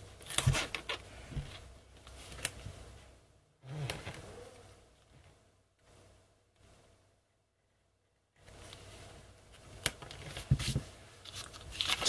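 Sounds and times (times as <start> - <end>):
paper and tape rustling: 0.2 - 2.6, 9.6 - 12.0.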